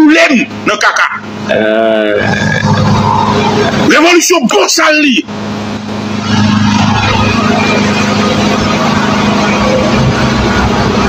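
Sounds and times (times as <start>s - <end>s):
low rumbling noise: 0.4s - 11.0s.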